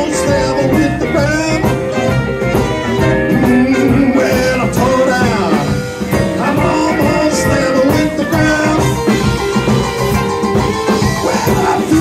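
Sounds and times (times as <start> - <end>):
blues band playing live: 0.0 - 12.0.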